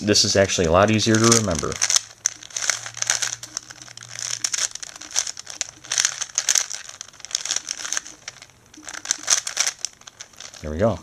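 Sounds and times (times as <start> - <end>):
puzzle cube clicking: 1.1 - 10.6.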